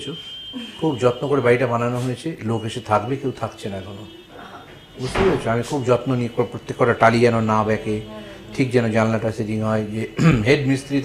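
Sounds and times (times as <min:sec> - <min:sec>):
man speaking: 0:00.8 - 0:04.2, 0:05.0 - 0:11.0.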